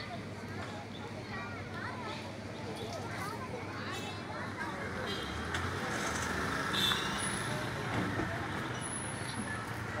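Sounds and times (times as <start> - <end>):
traffic engines and road noise: 0.0 - 10.0.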